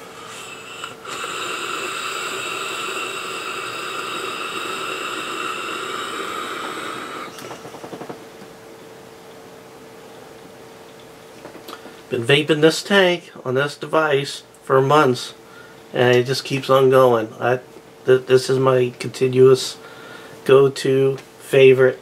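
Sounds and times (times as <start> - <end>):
vape hissing: 0.0 - 7.6
vape crackling: 0.3 - 7.5.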